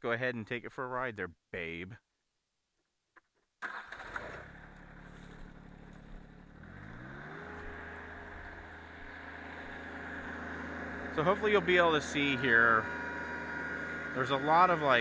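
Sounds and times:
tractor diesel engine running: 3.6 - 15.0.

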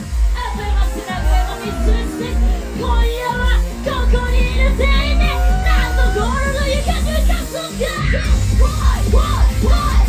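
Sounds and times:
live heavy rock music: 0.0 - 10.0
shouted vocals: 0.4 - 8.1.

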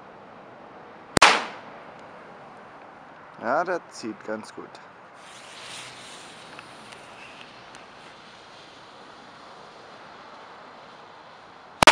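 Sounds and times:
faint outdoor background hiss: 0.0 - 11.9.

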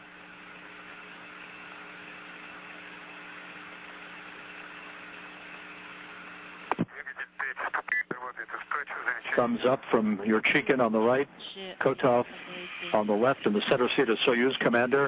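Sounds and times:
radio hiss and hum: 6.6 - 15.0
radio click: 6.7 - 9.2
narrow-band radio voice: 6.8 - 10.3, 11.4 - 13.6.

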